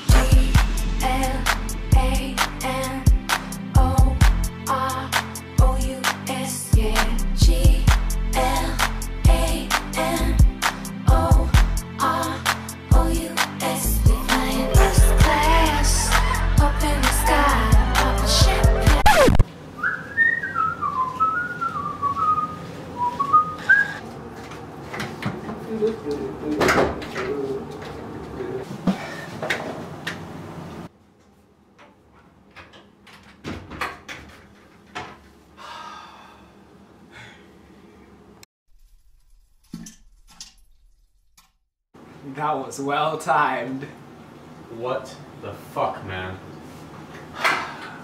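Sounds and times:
person whistling a tune: 19.8s - 24.0s.

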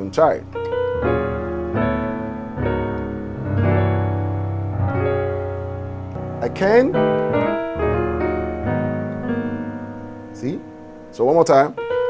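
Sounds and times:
digital piano gospel chords: 0.0s - 12.0s.

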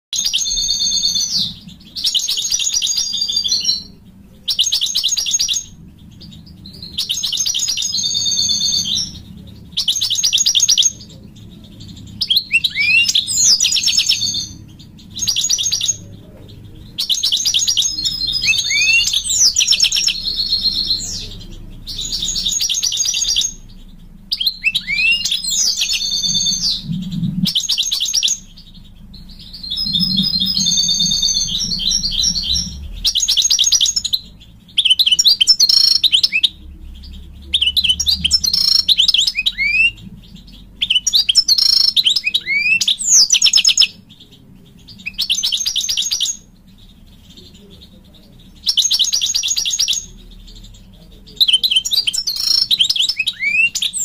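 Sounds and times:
goldfinch twittering song: 0.1s - 54.0s.

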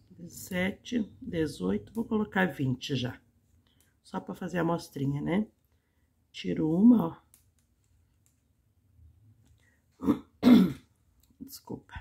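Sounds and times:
woman clearing her throat: 10.0s - 10.9s.

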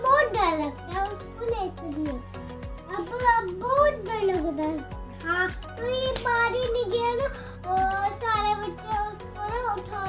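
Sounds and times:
song with steady beat: 2.1s - 3.4s.

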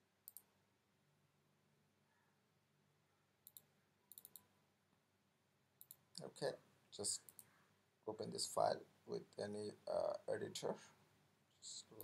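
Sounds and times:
computer mouse clicks: 0.2s - 0.5s, 3.4s - 4.5s, 5.8s - 6.3s, 7.2s - 7.6s.

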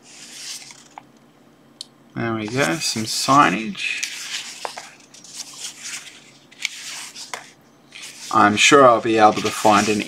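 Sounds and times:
paper pages rustling: 0.0s - 1.0s, 2.4s - 10.0s.

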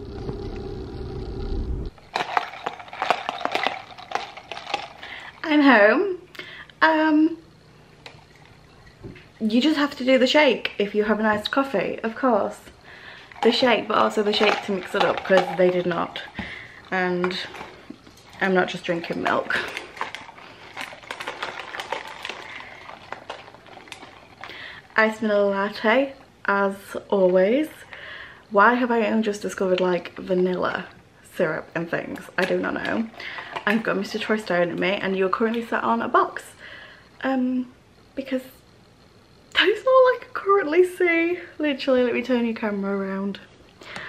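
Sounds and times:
ice cubes rattling in plastic cup: 2.0s - 5.8s, 13.1s - 26.2s, 32.0s - 35.7s.

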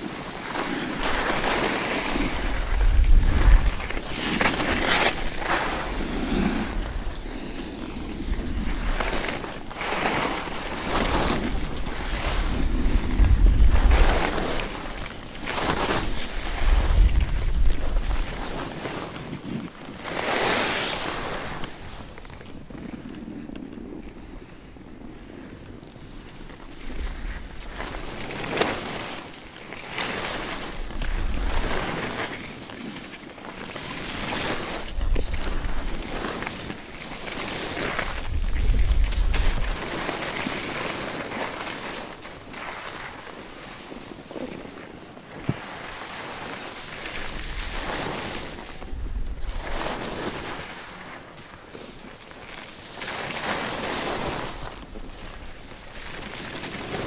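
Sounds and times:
wind buffeting microphone: 0.0s - 19.8s, 30.2s - 32.6s, 34.0s - 52.2s
skis scraping over snow: 0.0s - 57.0s.

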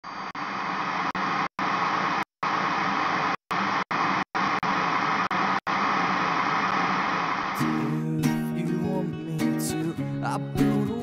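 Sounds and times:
television static hiss: 1.2s - 7.6s.

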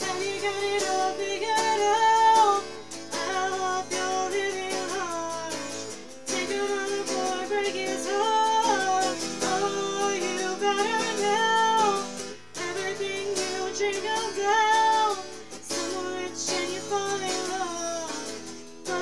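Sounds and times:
electric guitar strumming: 0.0s - 19.0s
woman singing: 0.0s - 19.0s.

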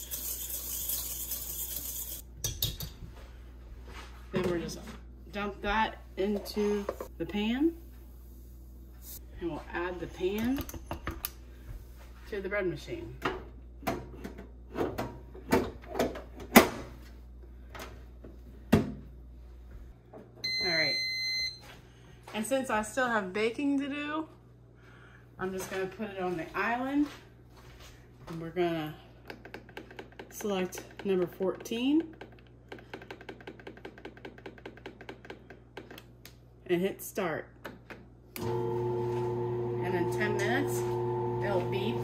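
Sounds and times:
whisk scraping metal bowl: 0.0s - 2.2s.

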